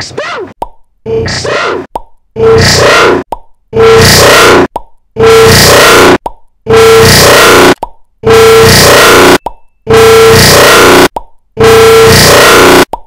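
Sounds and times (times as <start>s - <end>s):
distorted wall of noise: 0.0s - 13.0s.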